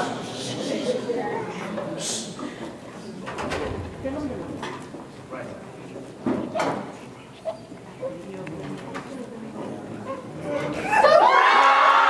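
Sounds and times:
people murmuring and whispering: 0.0 - 11.3.

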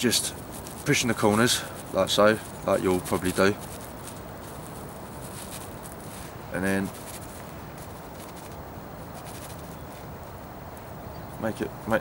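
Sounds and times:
plastic bag rustling: 0.0 - 9.8
low background hiss: 0.0 - 12.0.

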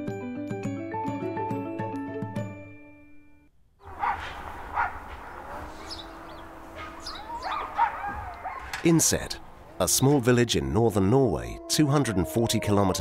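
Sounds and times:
dogs barking and yelping: 3.8 - 10.3.

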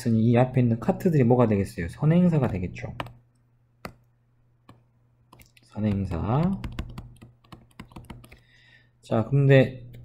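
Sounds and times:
stylus tapping on tablet screen: 2.4 - 3.2, 3.8 - 8.4.

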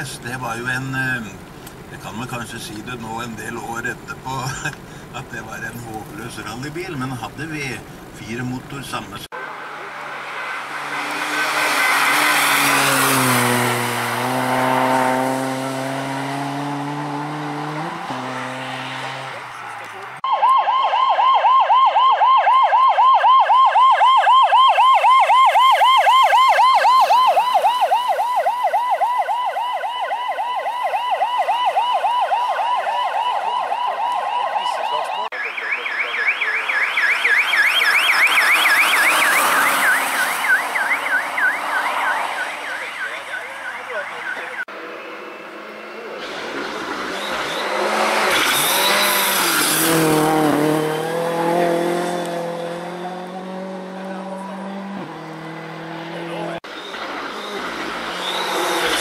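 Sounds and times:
wavering electronic siren: 9.3 - 45.5, 47.0 - 59.0
vehicle driving past: 9.4 - 20.2, 44.7 - 59.0
higher wavering siren: 10.5 - 18.3, 20.2 - 44.7.

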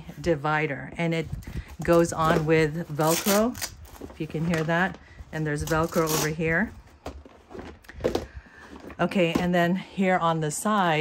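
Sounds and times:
plastic boxes knocking and scraping: 6.9 - 9.8.

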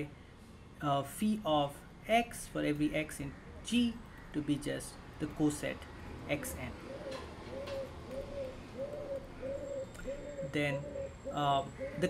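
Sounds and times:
bird hooting: 6.8 - 12.0.

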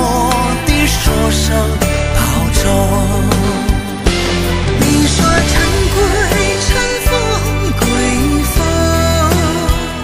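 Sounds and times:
man singing: 0.0 - 10.0
pop band with steady beat: 0.0 - 10.0
woman singing: 4.8 - 9.8.

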